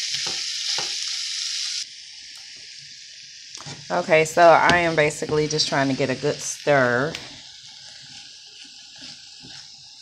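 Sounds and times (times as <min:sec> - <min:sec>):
food sizzling in oil: 0:00.0 - 0:10.0
wooden spoon scraping pan: 0:07.2 - 0:10.0.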